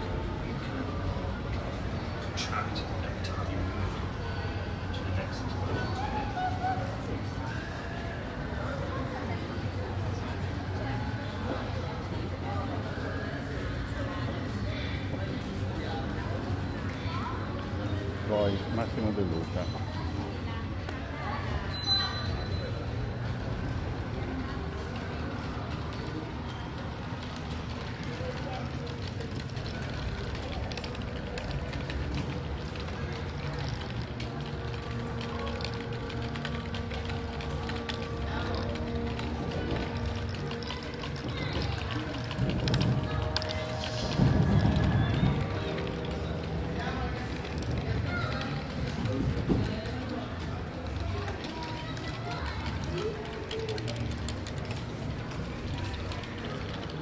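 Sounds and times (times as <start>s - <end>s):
murmur of voices: 0.0s - 57.0s.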